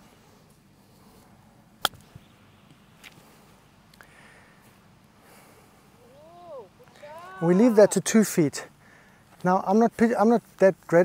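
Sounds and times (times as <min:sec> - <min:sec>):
golf club striking ball: 0:01.8 - 0:02.3.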